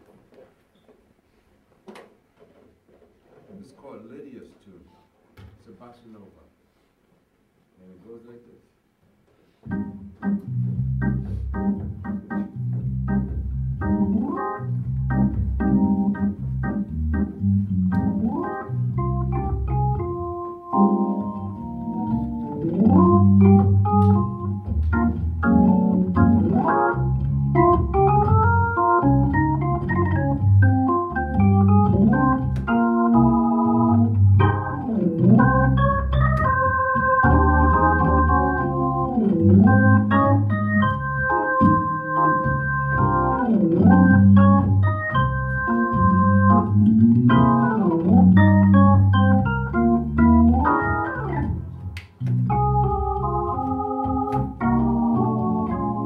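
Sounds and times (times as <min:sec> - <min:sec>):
organ playing bossa nova: 0:09.7 - 0:56.0.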